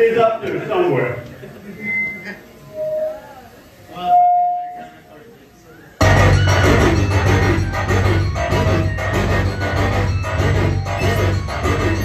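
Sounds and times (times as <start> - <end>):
synthesizer tones: 1.8 - 4.8.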